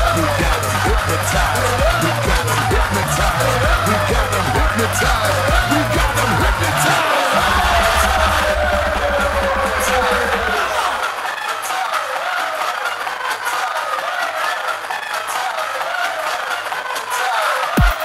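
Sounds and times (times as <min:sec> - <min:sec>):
heavy bass: 0:00.0 - 0:11.1
electronic dance music: 0:00.0 - 0:18.0.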